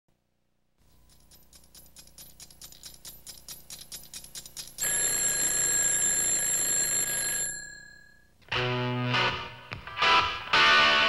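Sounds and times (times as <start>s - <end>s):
mechanical alarm clock ringing: 4.8s - 8.3s.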